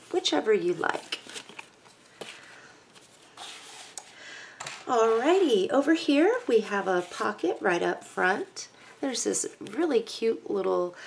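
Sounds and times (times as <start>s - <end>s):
paper rustle: 0.9s - 4.2s.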